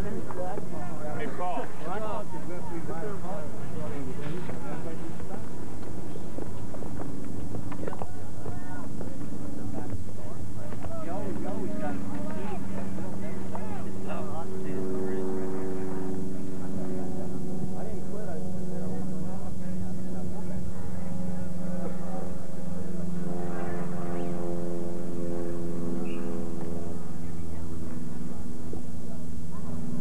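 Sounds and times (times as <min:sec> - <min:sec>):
steady low drone: 0:00.0 - 0:30.0
distant shouting voices: 0:07.8 - 0:19.2.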